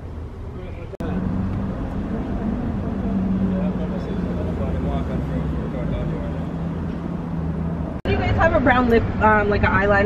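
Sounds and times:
vehicle engine idling: 0:00.0 - 0:08.5.

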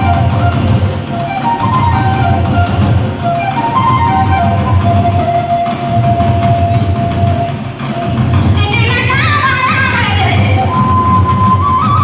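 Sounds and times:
flute long note: 0:00.0 - 0:08.3, 0:10.4 - 0:12.0
steady drumming: 0:00.0 - 0:12.0.

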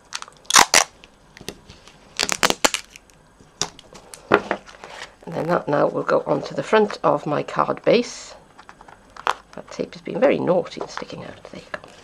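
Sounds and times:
sticky tape pulled and torn: 0:00.0 - 0:01.0, 0:02.2 - 0:03.2.

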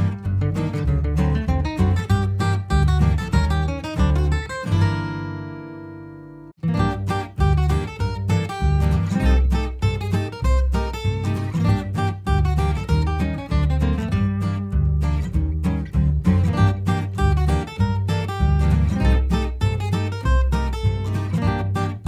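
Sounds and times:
acoustic guitar music: 0:00.0 - 0:22.0.

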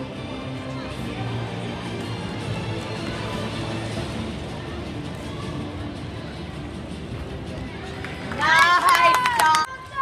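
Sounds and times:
murmur of crowd in hall: 0:00.0 - 0:10.0
people clapping: 0:07.8 - 0:10.0.

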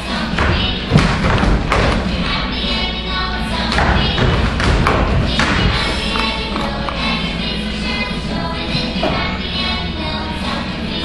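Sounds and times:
recorded dance music: 0:00.0 - 0:11.0
dull thumps: 0:00.3 - 0:02.4.

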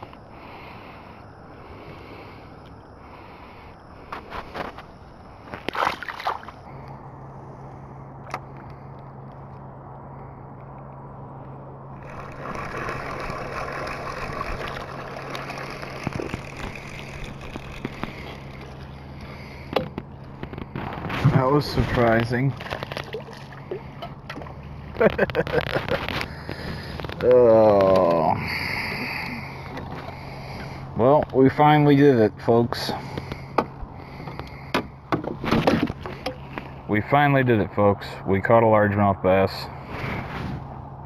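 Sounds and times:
water sloshing around boat: 0:00.0 - 0:08.9, 0:11.9 - 0:36.8
electric motor humming: 0:12.0 - 0:21.0.

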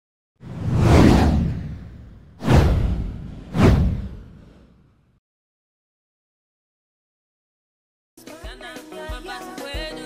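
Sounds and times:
whoosh sound effect: 0:00.4 - 0:04.9
low rumble: 0:00.5 - 0:04.8.

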